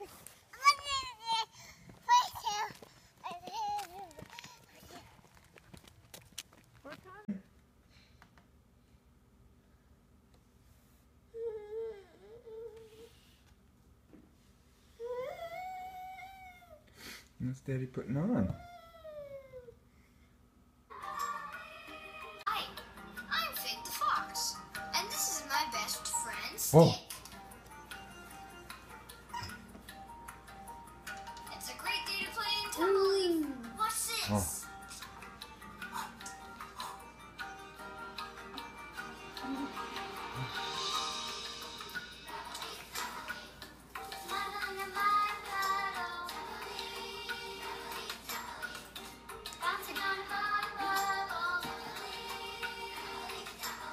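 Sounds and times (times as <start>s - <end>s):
toddler whiny humming: 11.3s - 13.3s, 14.9s - 16.8s, 18.6s - 19.8s, 39.4s - 40.7s
children's tv music on television: 20.8s - 53.9s.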